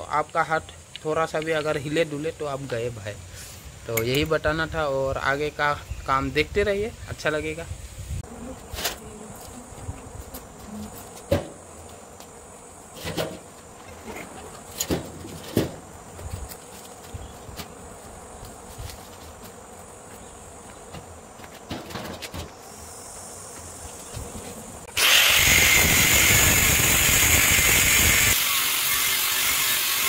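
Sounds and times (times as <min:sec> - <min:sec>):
high insect buzz: 0:00.0 - 0:30.0.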